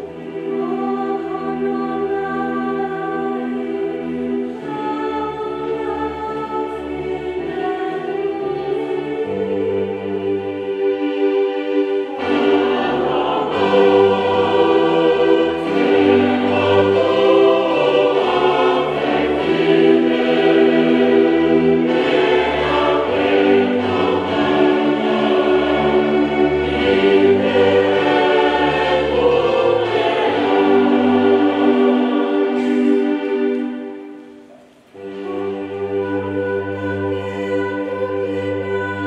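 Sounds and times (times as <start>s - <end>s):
choir singing held chords: 0.0s - 39.0s
orchestral accompaniment: 0.0s - 39.0s.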